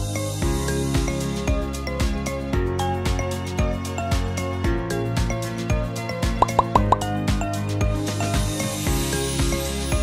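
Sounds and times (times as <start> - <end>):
background music with beat: 0.4 - 10.0
rising pop sound effects: 6.4 - 7.3.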